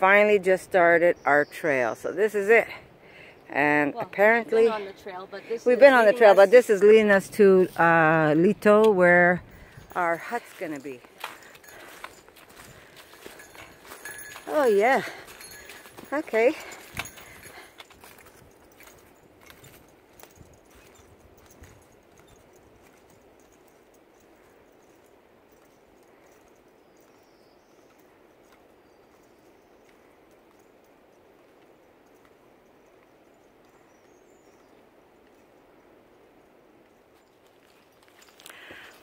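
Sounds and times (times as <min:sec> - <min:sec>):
trekking poles tapping: 0:09.6 - 0:24.0
footsteps on leaves: 0:10.2 - 0:18.3.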